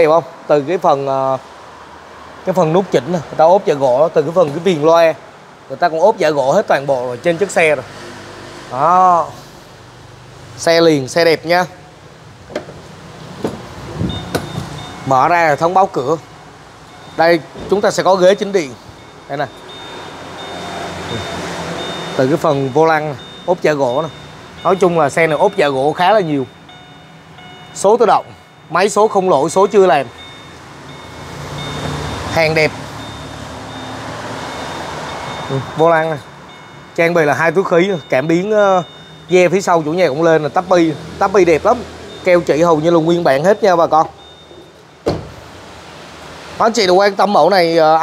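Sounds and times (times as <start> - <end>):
car door latch clicks: 12.5 - 12.8, 13.4 - 14.7, 45.0 - 45.4
car door-open warning chime: 14.0 - 45.5.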